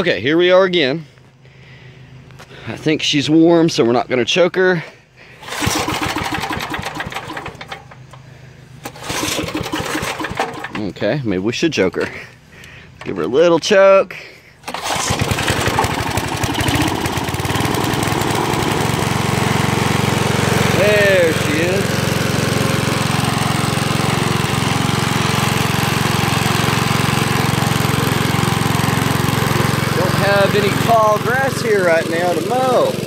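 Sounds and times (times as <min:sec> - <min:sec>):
lawn mower engine starting and running: 0:04.7 - 0:33.0.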